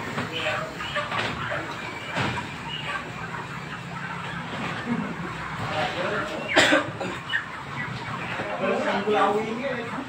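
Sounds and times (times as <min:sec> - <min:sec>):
chickens clucking: 0:00.0 - 0:10.0
men talking: 0:04.8 - 0:07.3, 0:07.9 - 0:10.0.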